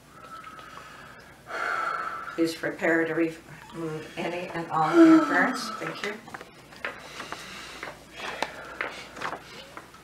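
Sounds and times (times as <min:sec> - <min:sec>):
person gasping: 0:04.8 - 0:06.1.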